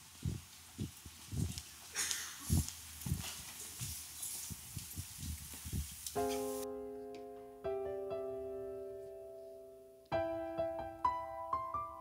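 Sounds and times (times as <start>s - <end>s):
footsteps on a stage: 0.0s - 6.6s
faint room hiss: 0.0s - 12.0s
piano chord ringing: 6.2s - 12.0s.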